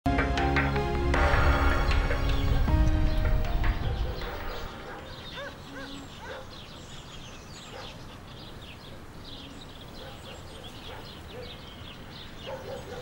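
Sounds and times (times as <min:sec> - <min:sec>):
music with sustained notes: 0:00.1 - 0:07.2
birds chirping and calling: 0:01.1 - 0:13.0.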